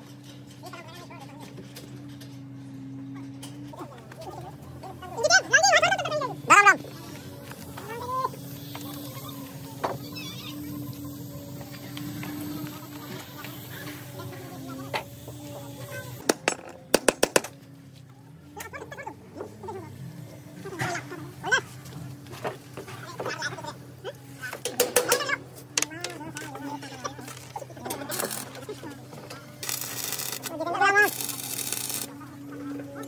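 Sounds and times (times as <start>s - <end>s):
voice-like calls: 4.2s - 16.2s.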